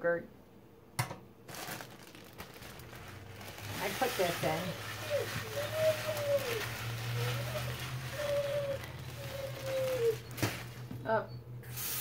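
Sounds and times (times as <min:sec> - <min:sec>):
low steady hum: 0:00.0 - 0:12.0
dog whimpering: 0:04.3 - 0:10.4.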